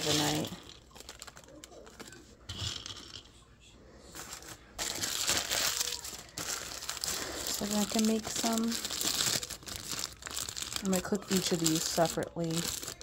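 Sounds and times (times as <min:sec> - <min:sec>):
plastic bag crinkling: 0:00.0 - 0:03.2, 0:04.1 - 0:13.0.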